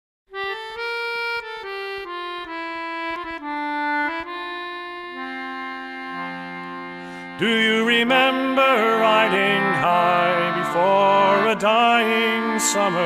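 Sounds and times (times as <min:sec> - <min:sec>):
accordion melody: 0:00.3 - 0:13.0.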